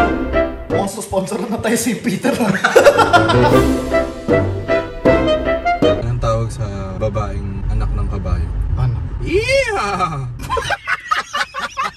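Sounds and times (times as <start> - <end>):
man talking: 0.7 - 2.8, 6.0 - 10.3
car engine low rumble: 5.4 - 10.7.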